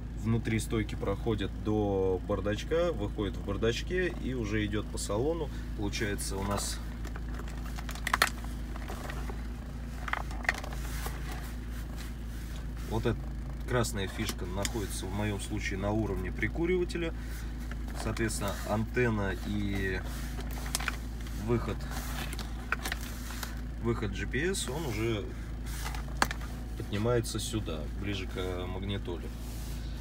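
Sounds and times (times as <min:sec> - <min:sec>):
low cabin hum: 0:00.0 - 0:30.0.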